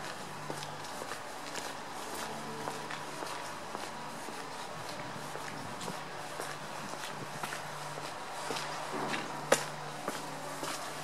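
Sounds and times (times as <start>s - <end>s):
footsteps on gritty tarmac: 0.0s - 11.0s.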